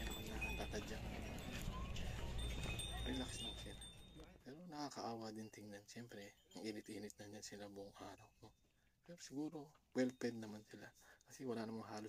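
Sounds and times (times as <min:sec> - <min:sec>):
hooves clip-clopping on stone: 0:00.0 - 0:04.0.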